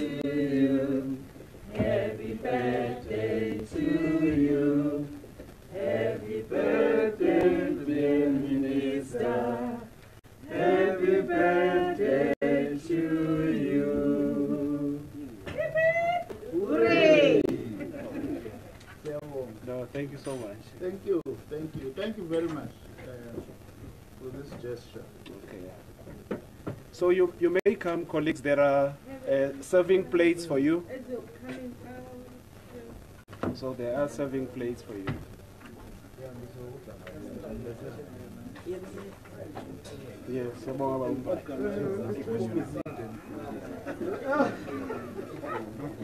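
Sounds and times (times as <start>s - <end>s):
indistinct chatter: 0.0s - 19.0s
quiet murmured voices: 28.9s - 46.0s.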